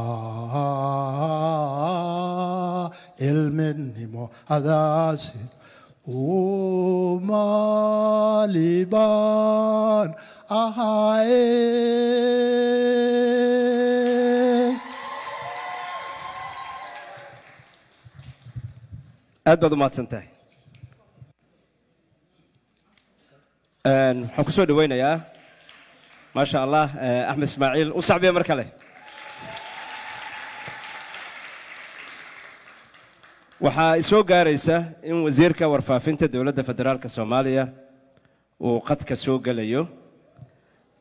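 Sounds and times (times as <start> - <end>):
audience applauding: 14.7 - 18.8, 25.3 - 26.4, 28.8 - 33.8.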